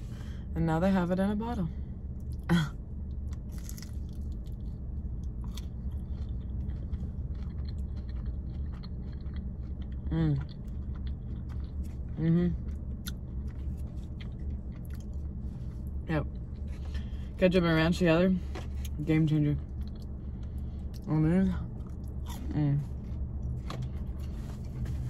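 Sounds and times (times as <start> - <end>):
steady low hum: 0.0 - 25.0
close-up chewing and biting: 3.1 - 16.0.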